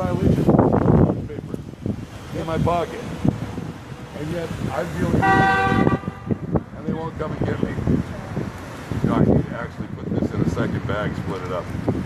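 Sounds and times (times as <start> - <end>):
car horn honking: 5.1 - 6.6.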